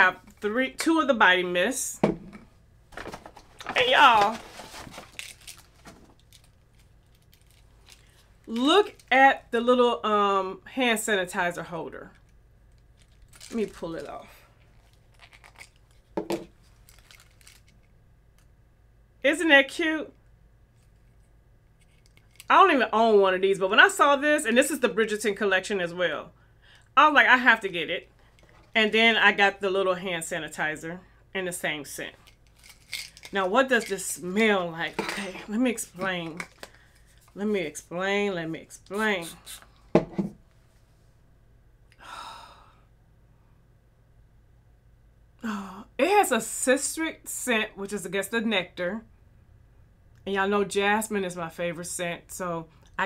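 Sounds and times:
packaging crackles: 0:03.0 - 0:08.2, 0:12.9 - 0:14.1, 0:14.7 - 0:16.1, 0:16.7 - 0:17.8, 0:32.2 - 0:33.9.

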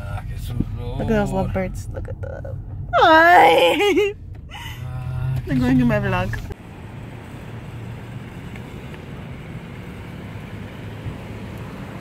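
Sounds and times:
distant traffic: 0:00.0 - 0:12.0.

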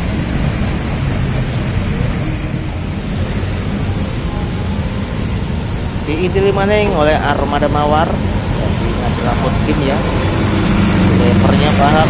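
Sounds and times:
diesel coach engine rumble: 0:00.0 - 0:12.0
traffic noise: 0:00.0 - 0:12.0.

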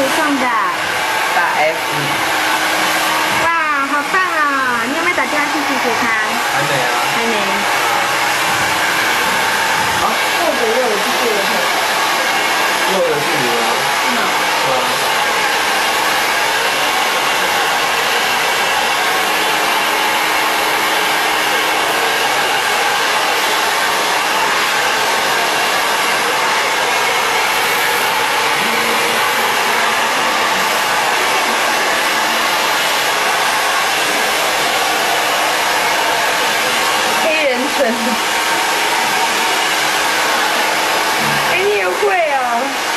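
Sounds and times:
hair dryer blowing: 0:00.0 - 0:42.9.

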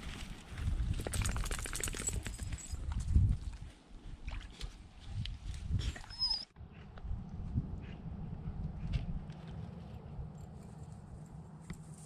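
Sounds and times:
dog whining: 0:06.0 - 0:06.6.

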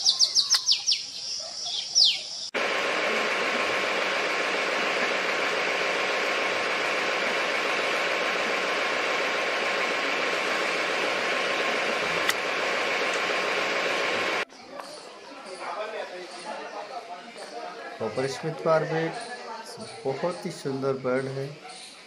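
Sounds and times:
steady hiss: 0:02.6 - 0:14.4.

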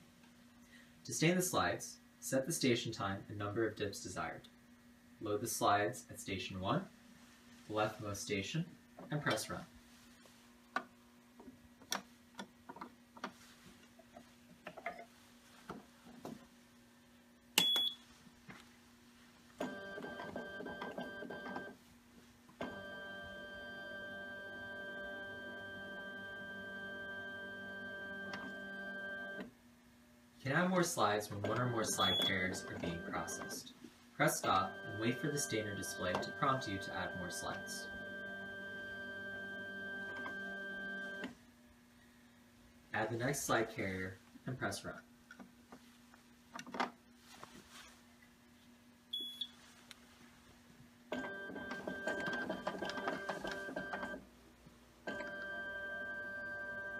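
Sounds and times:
faint steady hum: 0:00.0 - 0:56.9.

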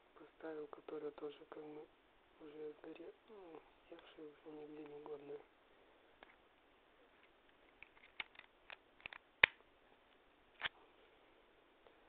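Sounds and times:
small hard objects clicking: 0:07.8 - 0:09.6.

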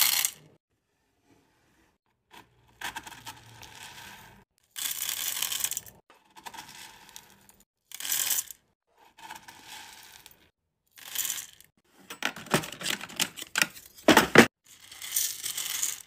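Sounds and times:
beads poured into metal pot: 0:00.0 - 0:00.4, 0:02.8 - 0:08.6, 0:09.2 - 0:11.7, 0:14.7 - 0:16.0
metal scoop scraping through beads: 0:00.0 - 0:00.4, 0:02.8 - 0:10.4, 0:11.0 - 0:11.7, 0:14.7 - 0:16.0.

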